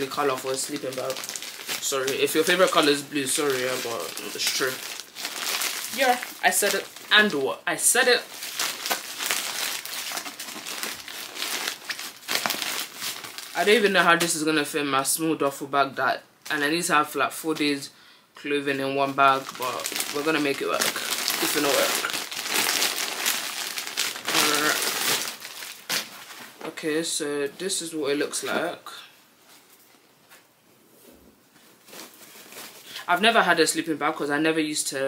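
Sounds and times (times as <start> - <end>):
packaging rustling and crumpling: 0.0 - 14.3, 19.0 - 26.7, 31.7 - 33.1.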